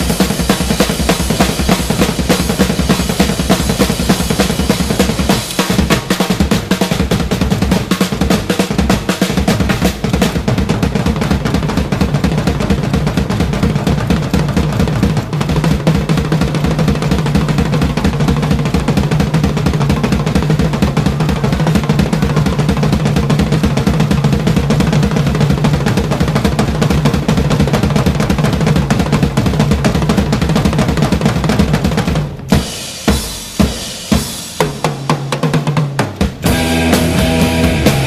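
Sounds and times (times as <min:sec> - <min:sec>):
drum roll on toms and bass drums: 0:00.0 - 0:38.0
loud accented drum hits: 0:00.0 - 0:38.0
rock band playing: 0:36.2 - 0:38.0.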